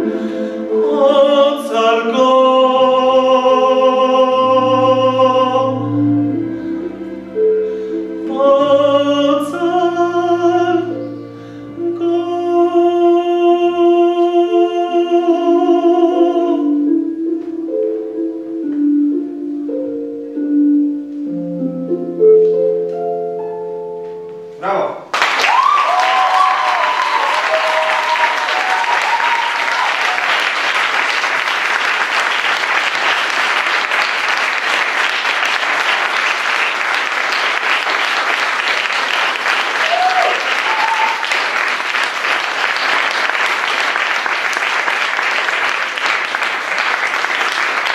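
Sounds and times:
audience applauding: 25.1s - 47.9s.

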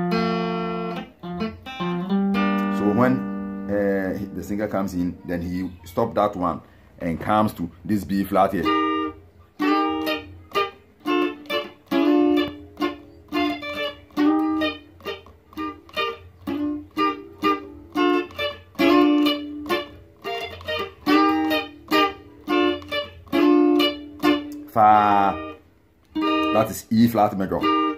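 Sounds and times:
electric guitar picked rhythm: 0.0s - 27.9s.

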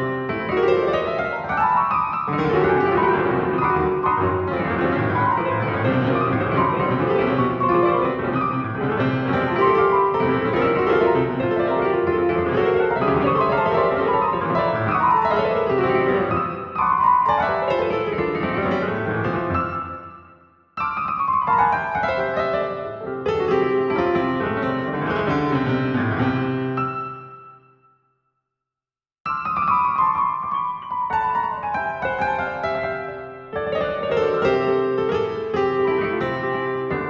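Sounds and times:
rapid piano notes: 0.0s - 20.2s, 20.8s - 27.3s, 29.3s - 37.0s.

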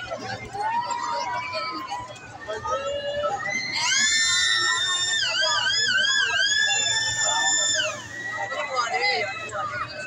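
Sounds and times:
long high-pitched scream: 3.6s - 8.7s.

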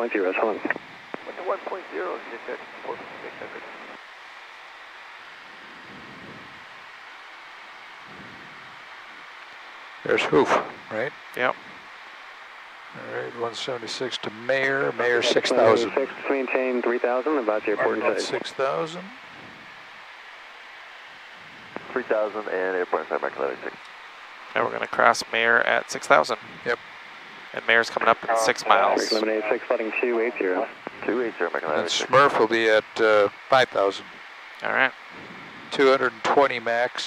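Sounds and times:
cockpit airflow and engine noise: 0.0s - 37.0s.

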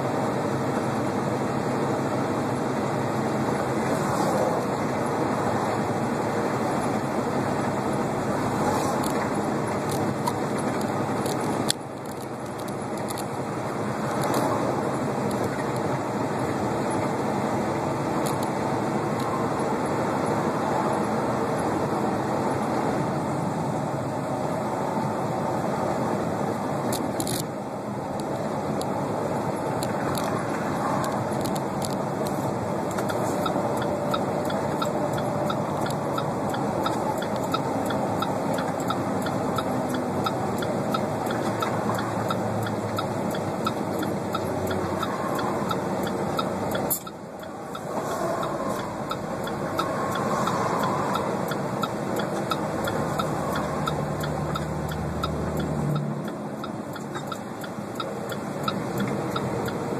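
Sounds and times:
truck road and engine noise: 0.0s - 59.9s
turn signal ticking: 2.9s - 21.7s, 26.5s - 59.9s.

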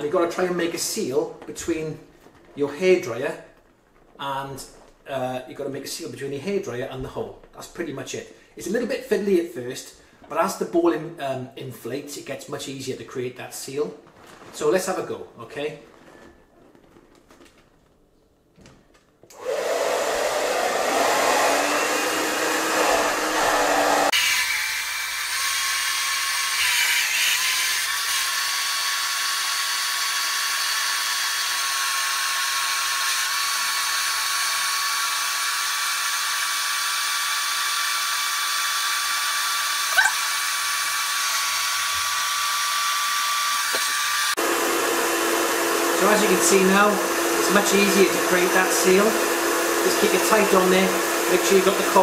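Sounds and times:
hair dryer blowing: 19.3s - 52.0s.

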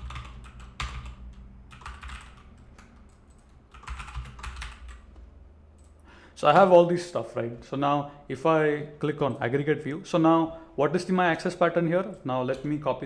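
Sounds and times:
computer keyboard typing: 0.0s - 6.0s
low steady hum: 0.0s - 11.0s.

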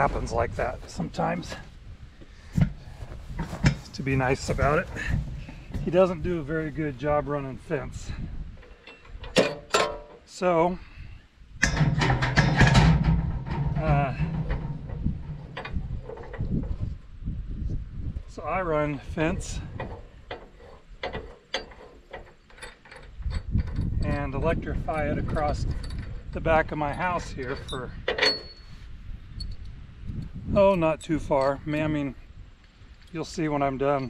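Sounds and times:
metallic clicks and clanks: 8.6s - 10.3s, 11.6s - 16.6s, 19.3s - 28.7s.

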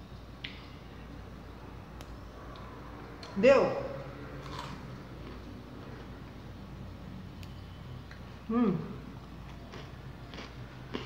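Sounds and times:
crunchy biscuit being chewed: 9.5s - 11.0s.

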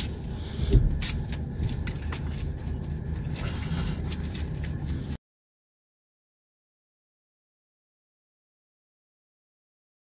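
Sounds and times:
car idling: 0.0s - 5.2s.

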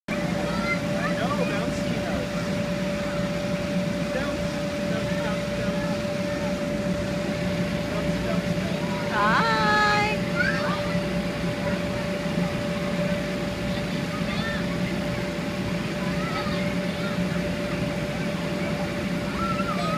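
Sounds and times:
constant machine hum: 0.1s - 19.9s
faint scattered voices: 0.1s - 19.9s.

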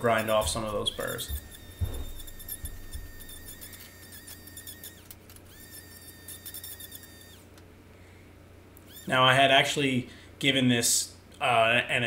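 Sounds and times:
die grinder whining: 0.0s - 7.6s, 8.8s - 9.3s.

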